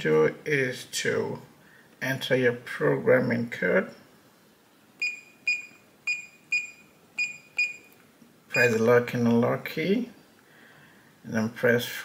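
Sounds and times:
keypad beeps: 5.0 - 8.9.

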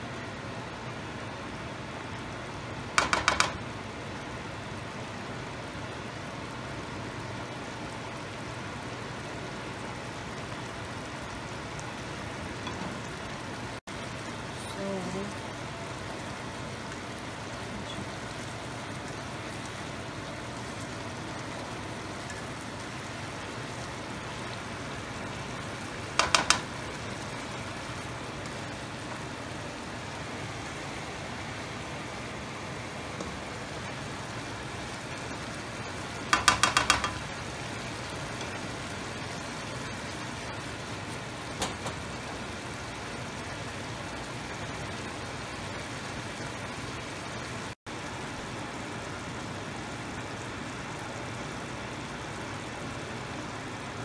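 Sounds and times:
curry simmering with sizzling hiss: 0.0 - 54.0.

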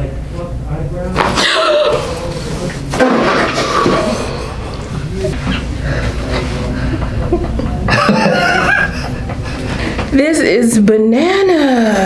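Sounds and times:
man laughing: 6.8 - 9.3.

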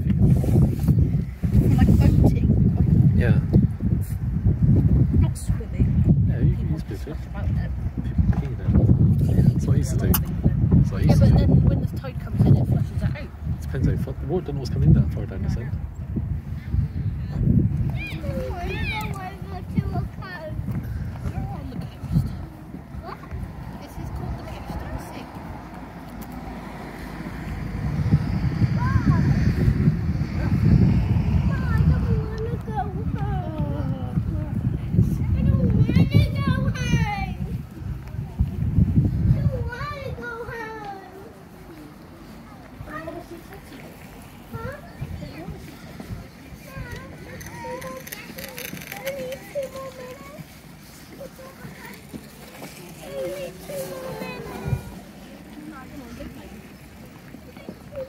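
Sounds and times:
wind buffeting microphone: 0.0 - 58.0
faint voices: 16.5 - 58.0.

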